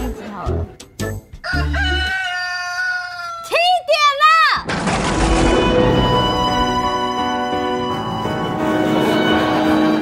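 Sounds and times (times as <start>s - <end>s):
rooster crowing: 1.4s - 3.5s.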